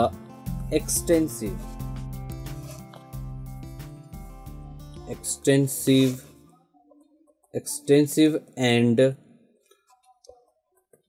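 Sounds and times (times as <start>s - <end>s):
person speaking: 0.0s - 1.8s, 5.0s - 6.5s.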